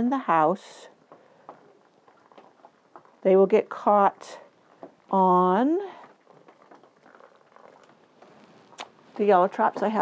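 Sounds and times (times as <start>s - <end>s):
water trickling onto soil: 1.0s - 10.0s.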